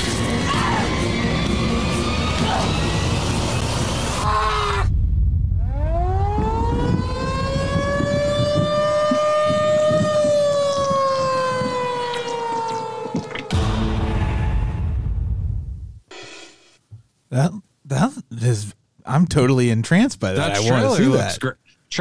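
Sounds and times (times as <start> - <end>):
tornado warning siren: 0.0 - 15.1
low rumble: 1.0 - 8.7, 13.5 - 16.0
dramatic trailer music: 13.5 - 15.8.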